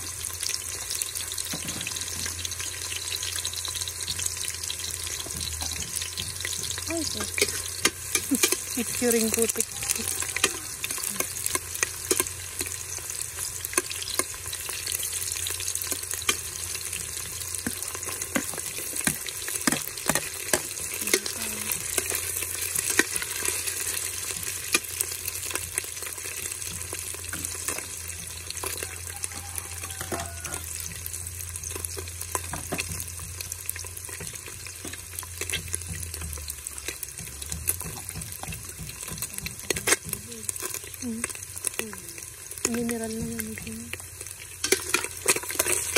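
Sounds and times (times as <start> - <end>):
onions sizzling in oil: 0.0 - 45.9
metal spoon scraping pot: 7.1 - 12.8, 44.6 - 45.9.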